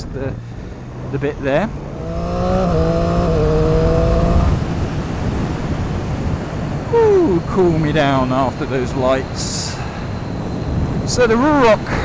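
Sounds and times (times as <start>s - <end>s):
motorcycle engine accelerating: 0.0s - 8.0s
wind rush: 0.3s - 12.0s.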